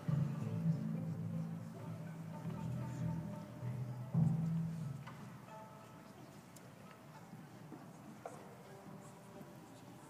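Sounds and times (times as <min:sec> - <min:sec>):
faint rustling and shuffling: 0:00.0 - 0:10.0
soft held orchestral notes: 0:00.0 - 0:10.0.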